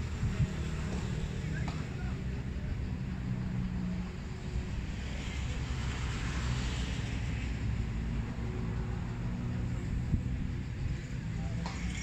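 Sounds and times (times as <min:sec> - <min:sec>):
distant road traffic rumble: 0:00.0 - 0:12.0
passing vehicle hiss: 0:00.0 - 0:12.0.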